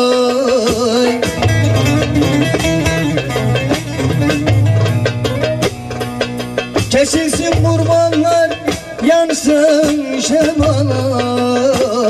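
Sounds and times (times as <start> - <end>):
hand drum strokes: 0.0 - 12.0
long-necked lute playing: 1.1 - 6.9.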